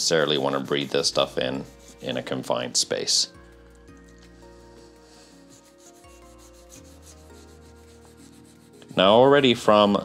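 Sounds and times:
rag wiping wood: 0.1s - 2.5s.

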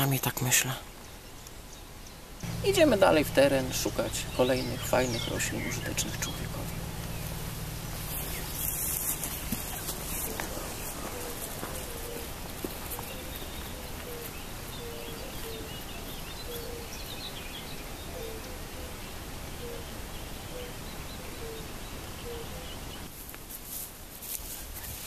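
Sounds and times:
outdoor background hiss: 0.0s - 25.0s
high bird chirps: 2.4s - 14.4s
bird low call notes: 2.4s - 19.0s.

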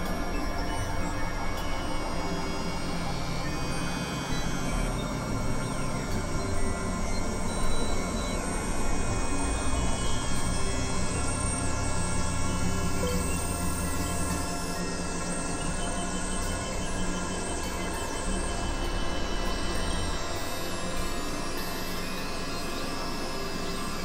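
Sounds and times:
deep low drone: 0.0s - 24.0s
synthesizer drone music: 0.0s - 24.0s.

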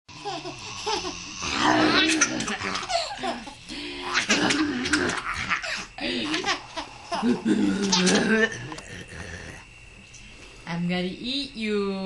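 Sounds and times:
baby giggling: 0.1s - 1.3s, 2.0s - 8.8s.

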